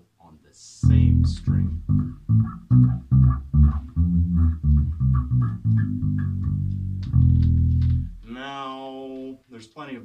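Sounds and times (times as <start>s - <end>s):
electric bass guitar notes: 0.8s - 8.5s.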